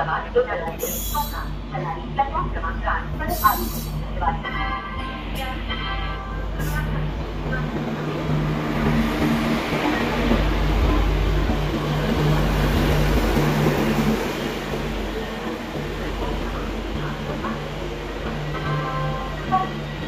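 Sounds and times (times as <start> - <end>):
locomotive low hum: 0.0 - 20.0
train wheels rumbling on rails: 0.0 - 20.0.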